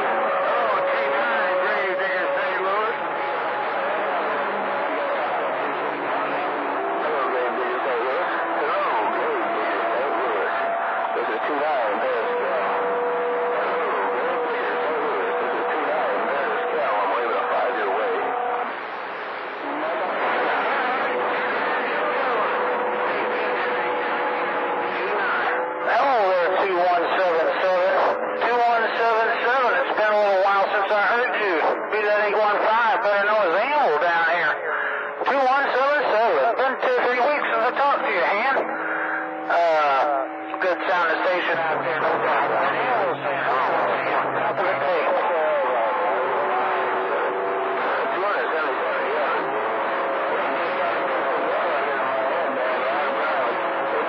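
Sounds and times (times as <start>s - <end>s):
distant voices over radio: 0.0s - 54.0s
clear voice over radio: 25.9s - 38.6s, 39.5s - 46.8s.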